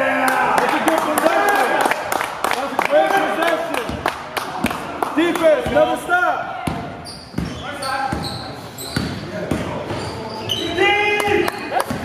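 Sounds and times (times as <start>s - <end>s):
shoes squeaking: 6.7s - 12.0s.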